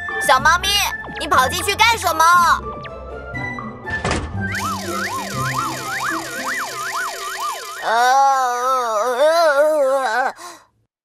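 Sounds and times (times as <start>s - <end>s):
light background music: 0.0s - 7.1s
wobbling swooping tone: 4.5s - 8.3s.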